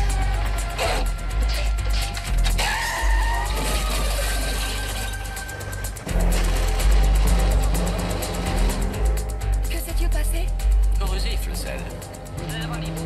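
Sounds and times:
car engine: 0.0 - 13.0
dramatic music: 0.0 - 13.0.

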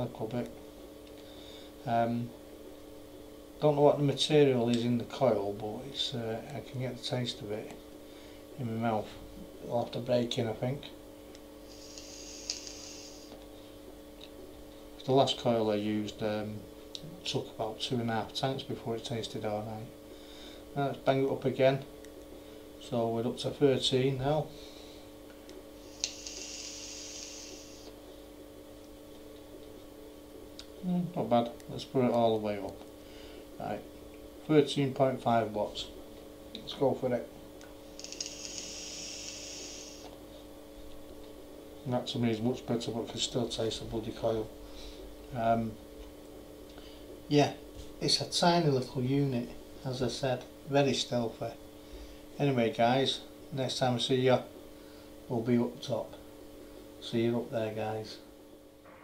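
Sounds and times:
faint hiss of vape draw: 11.6 - 13.4, 25.8 - 28.0, 37.9 - 40.2
vape pen click: 12.0 - 12.8, 26.0 - 26.6, 38.0 - 39.5.

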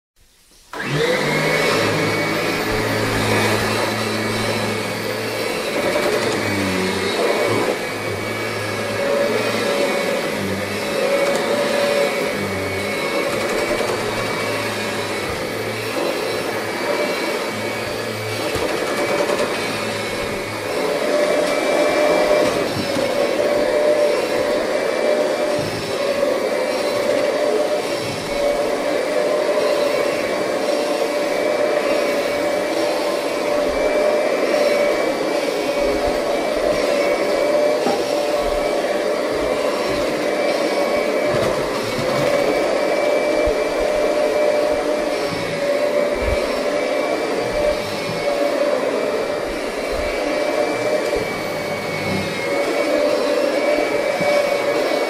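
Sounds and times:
vacuum cleaner hum and whine: 0.4 - 55.0.

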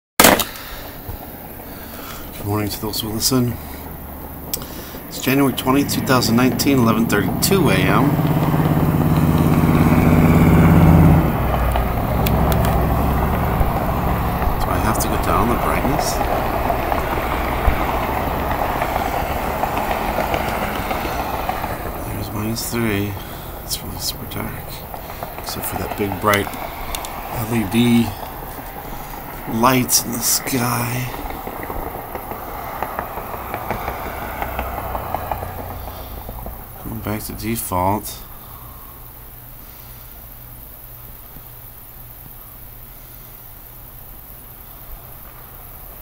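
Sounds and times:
low background hiss: 0.5 - 46.0
steady rushing rumbling noise: 0.6 - 39.6.

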